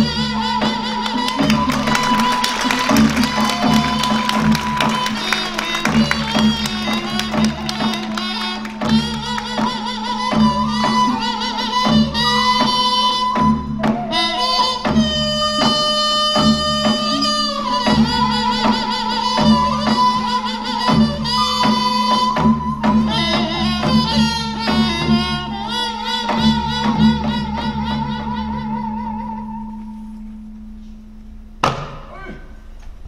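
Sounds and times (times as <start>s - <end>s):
wind instrument melody: 0.0s - 31.2s
drum strokes: 0.1s - 28.2s
sharp percussion stroke: 1.0s - 11.0s.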